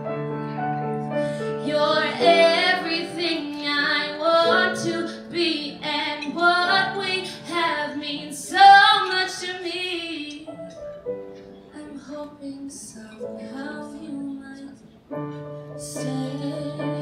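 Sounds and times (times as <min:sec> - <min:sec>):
piano accompaniment: 0:00.0 - 0:17.0
woman singing: 0:01.6 - 0:10.5, 0:11.7 - 0:14.8, 0:15.8 - 0:17.0.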